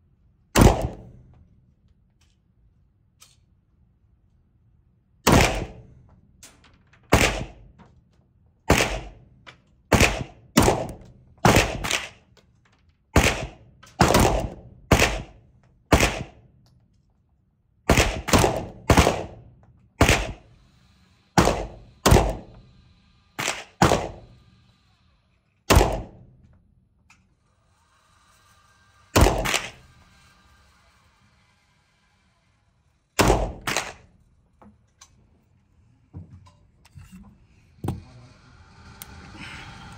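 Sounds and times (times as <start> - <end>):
pistol shots echoing indoors: 0.5 - 1.1, 5.2 - 5.8, 7.1 - 7.6, 8.7 - 9.2, 13.2 - 16.4, 17.9 - 19.4.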